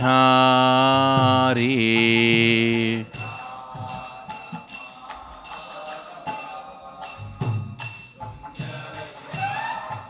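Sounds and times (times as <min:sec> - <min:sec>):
person singing prayer: 0:00.0 - 0:07.5, 0:08.6 - 0:10.0
hand cymbals struck in a beat: 0:00.0 - 0:10.0.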